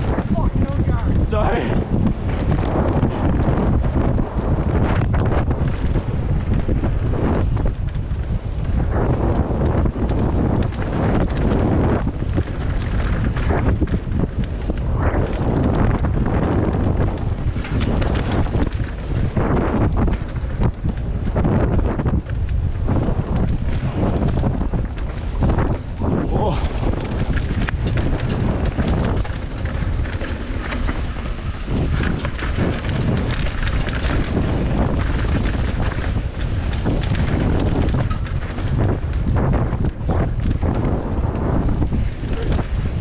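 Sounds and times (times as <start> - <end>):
bike knocks and rattles: 0.0 - 43.0
tyre rumble on dirt: 0.0 - 43.0
wind buffeting microphone: 0.0 - 43.0.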